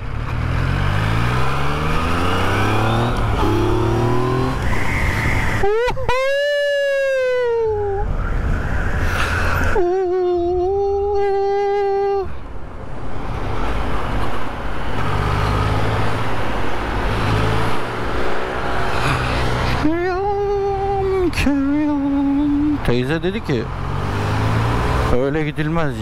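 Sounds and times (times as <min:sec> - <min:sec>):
motorcycle engine in traffic: 0:00.0 - 0:08.4, 0:13.5 - 0:26.0
road noise: 0:00.0 - 0:26.0.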